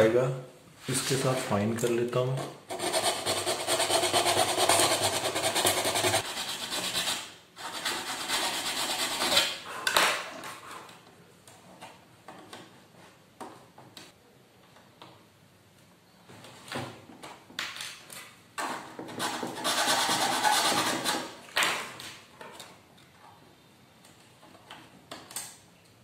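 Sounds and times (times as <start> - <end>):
file rasping plastic: 2.7 - 9.7, 19.1 - 21.3.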